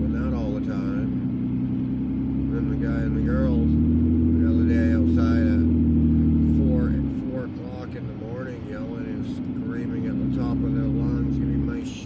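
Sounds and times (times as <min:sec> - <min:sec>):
car engine and tyre drone: 0:00.0 - 0:12.0.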